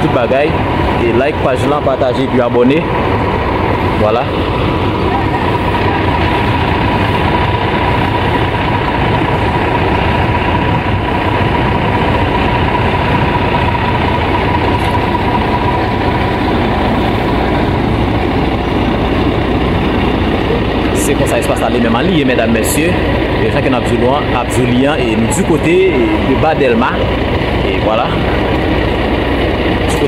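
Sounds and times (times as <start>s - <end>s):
heavy vehicle engine running: 0.0s - 30.0s
thin steady whine: 0.0s - 30.0s.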